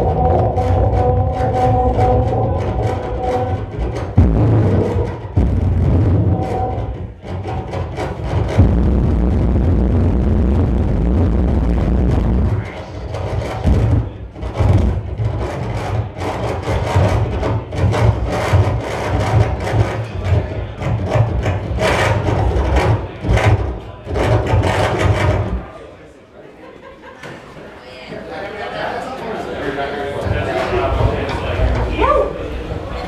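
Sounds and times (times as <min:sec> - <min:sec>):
heavy low electronic drone: 0:00.0 - 0:15.4
stuttering bursts of harsh noise: 0:00.0 - 0:20.8.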